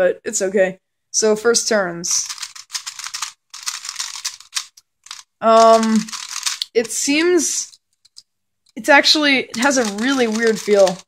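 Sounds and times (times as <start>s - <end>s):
plastic puzzle clicking and rattling: 2.1s - 11.0s.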